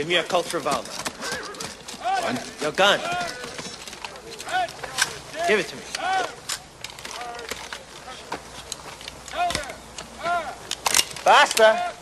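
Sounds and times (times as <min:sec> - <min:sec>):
rifle reloading clicks and knocks: 0:00.4 - 0:05.2, 0:05.9 - 0:11.8
man shouting: 0:02.0 - 0:03.5, 0:04.5 - 0:06.4, 0:09.3 - 0:10.6, 0:11.2 - 0:12.0.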